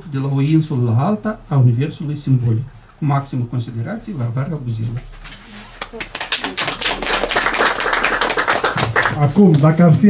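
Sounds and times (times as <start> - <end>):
audience applauding: 5.8 - 9.6.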